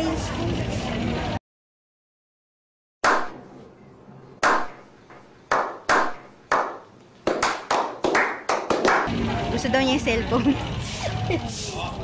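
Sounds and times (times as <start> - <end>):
slow hand claps with echo: 5.5 - 9.1.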